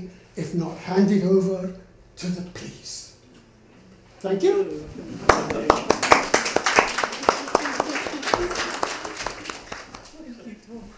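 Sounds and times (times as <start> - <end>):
audience applauding: 5.2 - 10.2.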